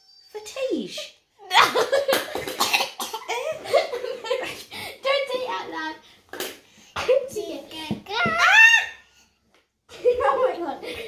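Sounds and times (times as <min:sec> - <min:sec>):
child crying high-pitched: 0:08.1 - 0:09.1.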